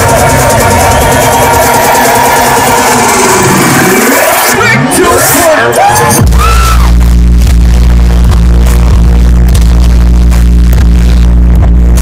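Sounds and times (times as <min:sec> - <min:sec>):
rising sweep: 0:00.0 - 0:04.6
loud electronic dance music: 0:00.0 - 0:12.0.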